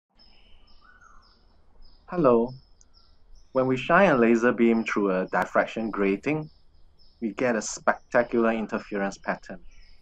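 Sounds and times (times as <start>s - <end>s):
faint high bird chirps: 0.2s - 10.0s.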